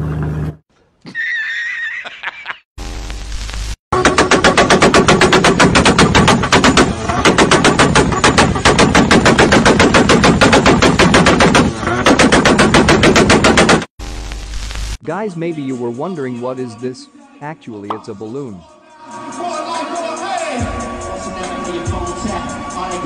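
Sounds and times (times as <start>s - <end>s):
rapid loud bangs: 3.9s - 13.9s.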